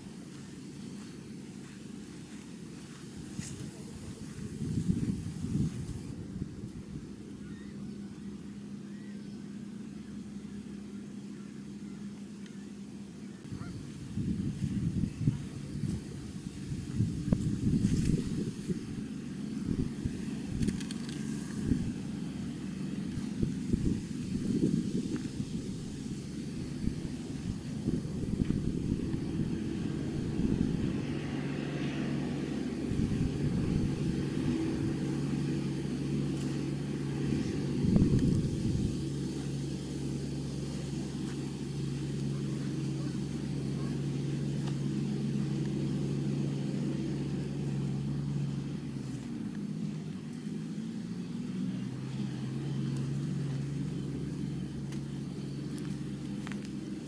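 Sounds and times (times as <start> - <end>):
low rumbling on microphone: 0.0 - 12.2, 13.0 - 57.0
engine running steadily: 0.0 - 57.0.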